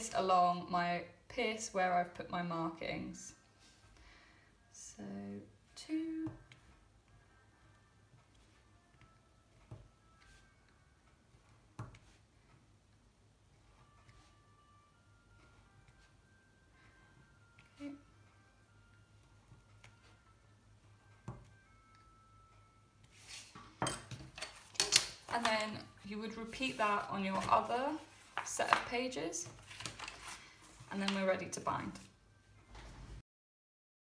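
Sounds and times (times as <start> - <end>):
paper sheets rustling: 26.3 - 31.2.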